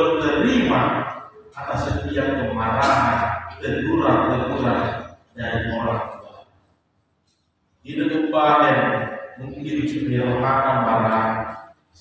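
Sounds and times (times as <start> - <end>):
man intoning a sermon: 0.0 - 6.5, 7.8 - 12.0.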